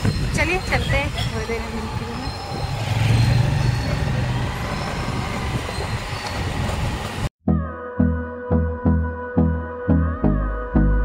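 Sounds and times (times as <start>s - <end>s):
passing vehicles: 0.0s - 7.3s
background music with slow beat: 7.5s - 11.0s.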